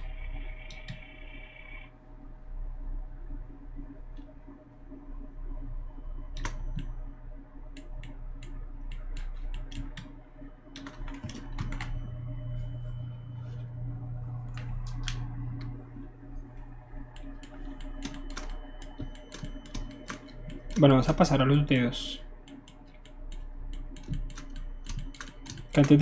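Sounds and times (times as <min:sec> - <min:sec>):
steady low hum: 0:00.0 - 0:26.0
keyboard and mouse clicking: 0:06.4 - 0:06.9, 0:07.8 - 0:10.1, 0:10.7 - 0:12.0, 0:17.2 - 0:20.8, 0:22.4 - 0:26.0.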